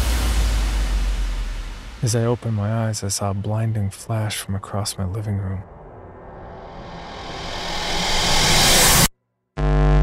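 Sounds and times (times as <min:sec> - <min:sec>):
low rumble: 0:00.0 - 0:09.1
rushing riser sound effect: 0:06.0 - 0:09.1.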